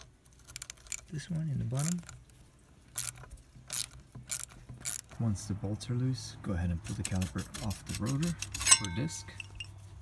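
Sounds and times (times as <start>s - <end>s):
socket ratchet clicking: 3.0s - 5.1s.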